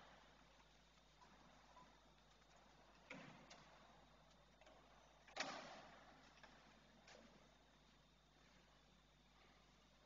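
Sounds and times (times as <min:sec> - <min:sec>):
knocks echoing in a church: 0:00.0 - 0:08.3.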